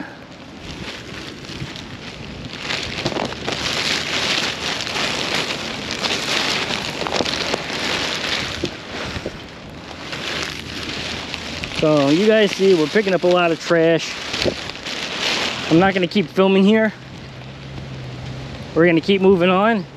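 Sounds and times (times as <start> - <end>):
plastic bag crinkling: 0.0 - 18.2.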